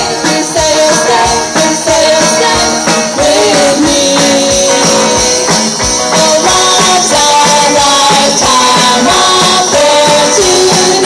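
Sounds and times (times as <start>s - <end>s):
guitars holding chords: 0.0s - 11.0s
rock band playing: 0.0s - 11.0s
steady drum beat: 0.0s - 11.0s.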